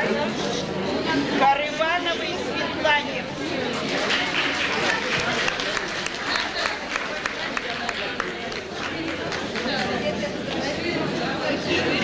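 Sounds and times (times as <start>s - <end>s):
crowd talking: 0.0s - 12.0s
hand claps: 3.8s - 9.9s.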